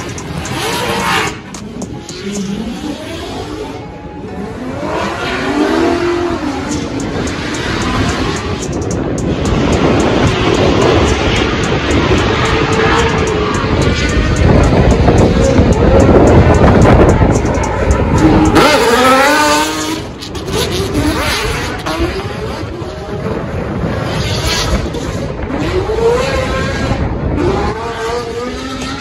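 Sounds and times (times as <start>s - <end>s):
car engines revving hard: 0.0s - 29.0s.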